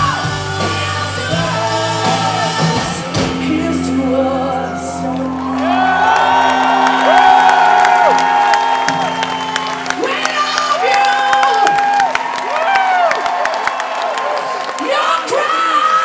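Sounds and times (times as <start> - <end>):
live rock band playing: 0.0 - 13.4
crowd cheering and clapping: 4.6 - 16.0.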